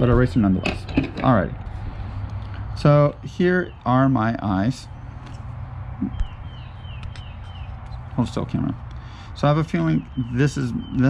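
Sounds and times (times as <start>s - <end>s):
steady low rumble: 0.0s - 11.0s
bird chirping: 2.3s - 11.0s.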